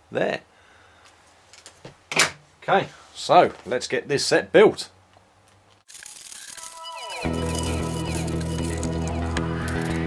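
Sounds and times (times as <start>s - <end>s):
plastic bags crinkling: 5.9s - 10.0s
music with falling tones: 6.4s - 10.0s.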